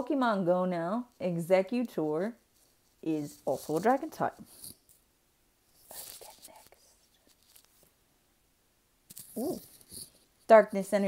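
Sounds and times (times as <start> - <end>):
faint whisper: 5.8 - 7.4, 9.4 - 9.7.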